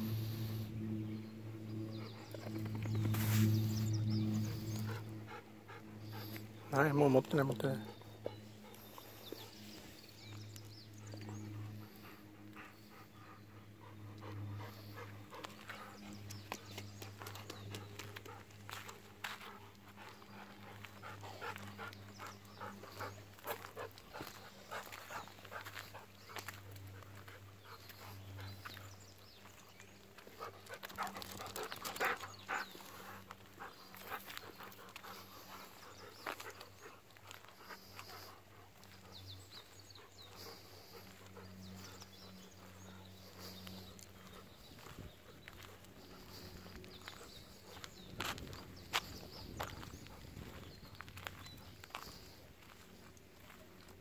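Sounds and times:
dog panting: 0.0s - 54.0s
steady low hum: 0.0s - 54.0s
paws clicking on concrete: 1.9s - 54.0s.

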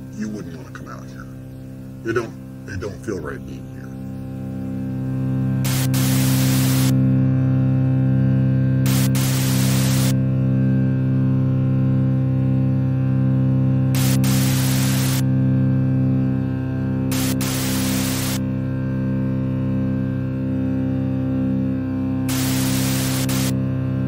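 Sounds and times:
loud static hiss: 0.0s - 7.1s, 8.8s - 10.2s, 13.9s - 15.4s, 17.1s - 18.5s, 22.2s - 23.6s
low steady drone: 0.0s - 24.0s.

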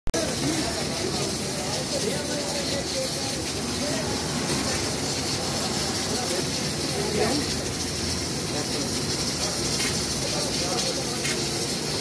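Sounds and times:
faint voices: 0.2s - 12.0s
food sizzling in a wok: 0.2s - 12.0s.

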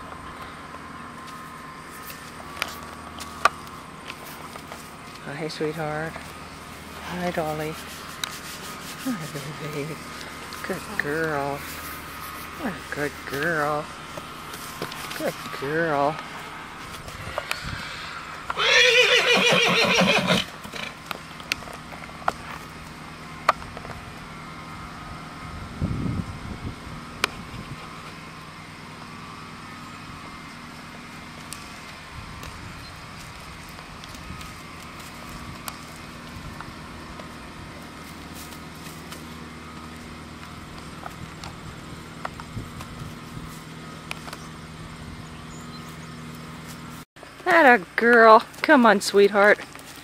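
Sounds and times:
horse hooves walking on dirt: 0.0s - 24.4s, 27.3s - 50.0s
low mechanical hum: 0.0s - 50.0s
horse whinnying: 18.5s - 21.0s.

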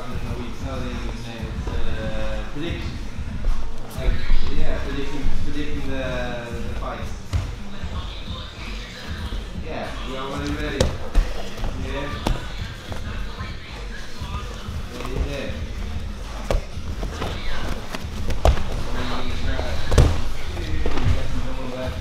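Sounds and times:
bodies thudding on foam mats: 10.4s - 13.1s, 14.8s - 21.5s.

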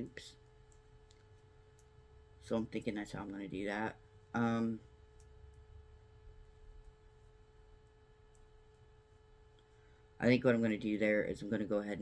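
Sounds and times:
faint steady pure tone: 0.0s - 12.0s.

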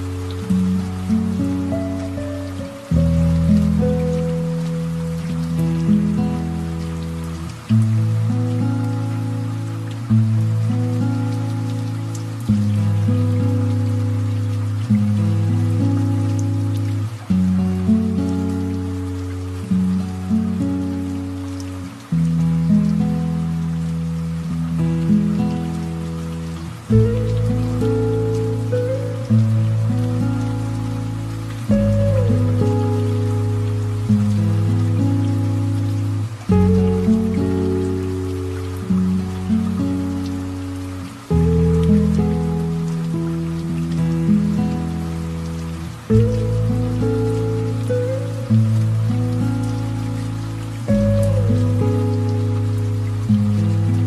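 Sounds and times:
light rain with drops: 0.0s - 54.0s
slow gentle piano music: 0.0s - 54.0s.

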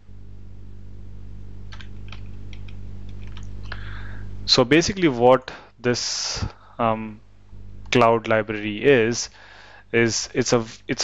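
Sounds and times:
steady low hum: 0.0s - 11.0s
computer keyboard typing: 1.7s - 3.5s.

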